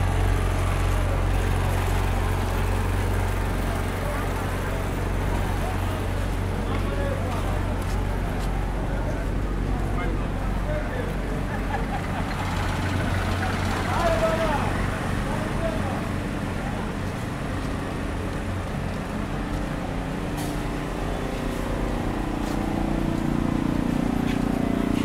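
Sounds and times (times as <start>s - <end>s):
people talking: 0.0s - 25.0s
steady engine hum: 0.0s - 25.0s
vehicle engines rumbling: 0.0s - 25.0s.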